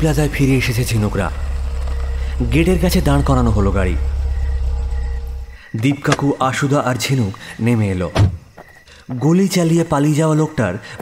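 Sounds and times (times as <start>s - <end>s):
car engine idling: 0.0s - 7.6s.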